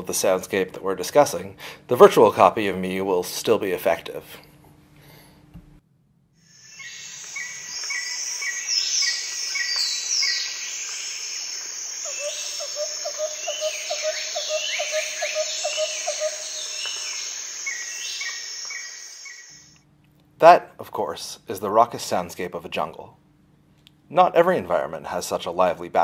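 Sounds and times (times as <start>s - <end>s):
high falling whistles: 6.5s - 19.8s
insects chorus: 6.5s - 19.8s
bird calls: 6.6s - 19.8s
low rapid pulsing call: 6.7s - 19.7s.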